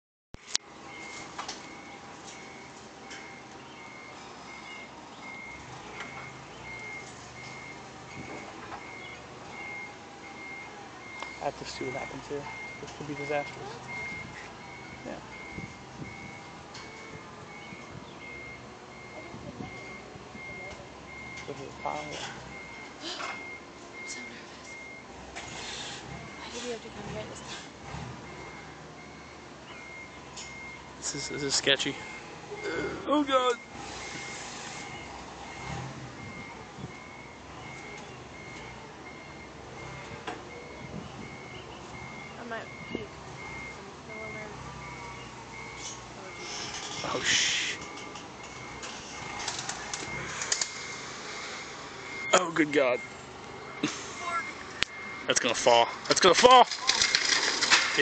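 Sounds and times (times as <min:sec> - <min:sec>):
forklift warning beeper: 0:00.4 - 0:57.1.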